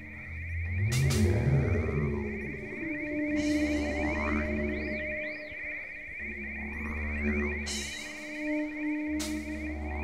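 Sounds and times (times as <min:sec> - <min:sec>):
deep low drone: 0:00.0 - 0:10.0
fast-pulsing high tone: 0:00.0 - 0:10.0.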